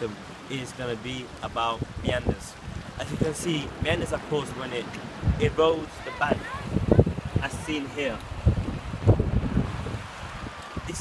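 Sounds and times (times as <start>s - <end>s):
wind buffeting microphone: 1.3s - 11.0s.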